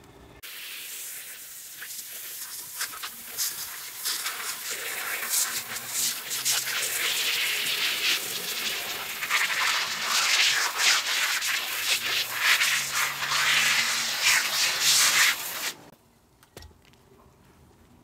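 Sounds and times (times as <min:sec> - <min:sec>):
brush scrubbing a rug: 0:00.8 - 0:15.9.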